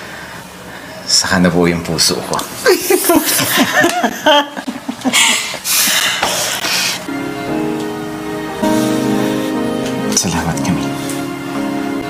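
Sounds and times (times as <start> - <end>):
people laughing and giggling: 2.7 - 6.5.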